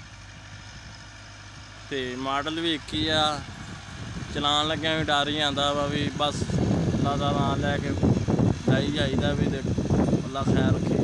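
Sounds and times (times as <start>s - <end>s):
diesel tractor engine under load: 0.0s - 11.0s.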